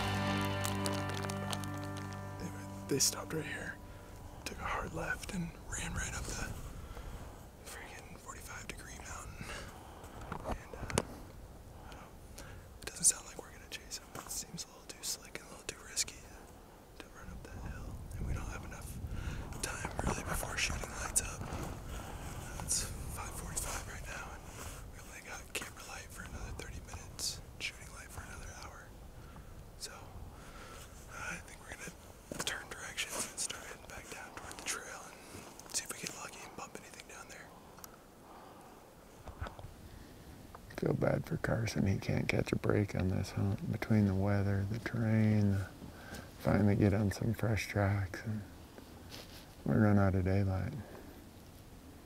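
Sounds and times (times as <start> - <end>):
man whispering: 2.0 - 6.7, 7.6 - 11.2, 11.8 - 29.0, 29.8 - 30.3, 31.0 - 37.7, 40.7 - 45.8, 46.4 - 48.5, 49.6 - 51.0.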